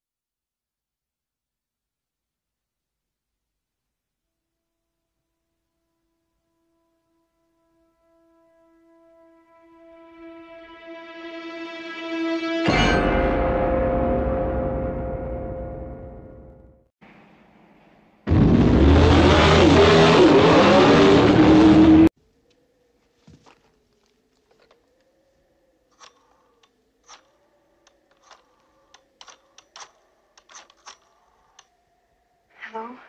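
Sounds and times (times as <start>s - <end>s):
held music chord: 6.3s - 16.8s
car engine roaring: 17.1s - 22.1s.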